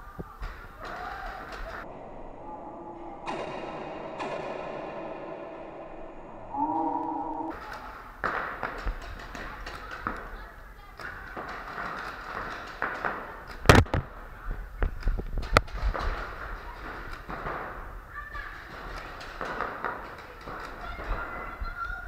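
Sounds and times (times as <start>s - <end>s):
brief steady tone: 6.4s - 7.5s
paintball markers firing: 7.6s - 10.4s, 11.0s - 17.9s, 18.6s - 21.5s.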